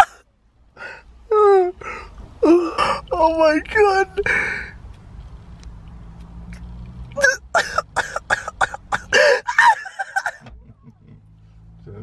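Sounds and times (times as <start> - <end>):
person laughing: 7.2 - 11.4.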